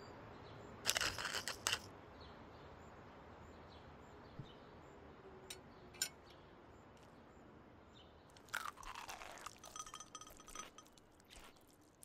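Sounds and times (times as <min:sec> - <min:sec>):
person chewing crunchy salad: 0:08.4 - 0:12.0.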